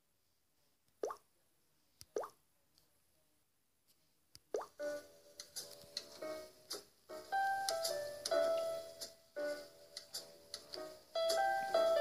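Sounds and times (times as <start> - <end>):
light keyboard music: 4.7 - 12.0.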